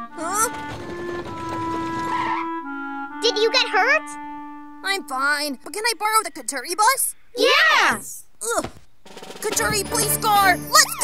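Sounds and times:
cartoon background music: 0.0s - 6.2s, 9.2s - 11.0s
cartoon voice chatter: 9.4s - 11.0s.

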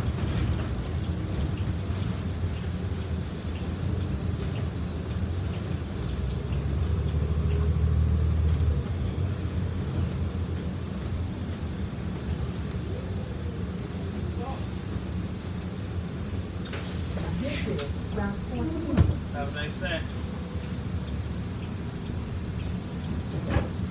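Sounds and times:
bus engine rumble: 0.0s - 23.9s.

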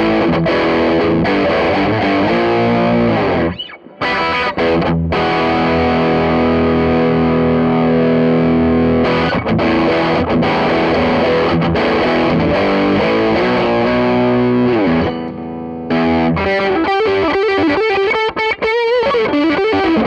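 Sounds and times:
distorted electric guitar: 0.0s - 20.0s.

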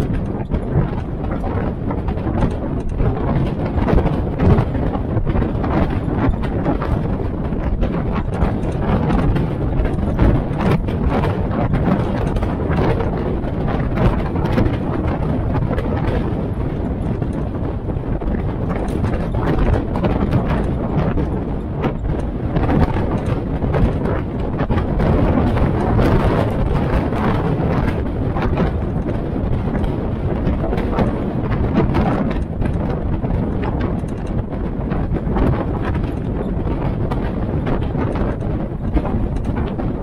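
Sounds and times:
vehicle body rattling: 0.0s - 40.0s.

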